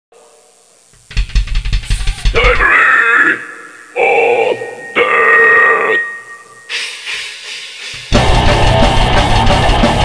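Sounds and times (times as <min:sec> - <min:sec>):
fast drum fill: 0:01.0 - 0:02.8, 0:07.1 - 0:10.0
metal vocalist shouting: 0:02.1 - 0:06.2.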